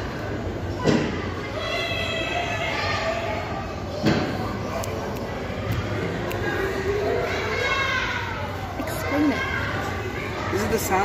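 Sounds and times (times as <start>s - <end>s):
murmur of voices in a hall: 0.0s - 11.0s.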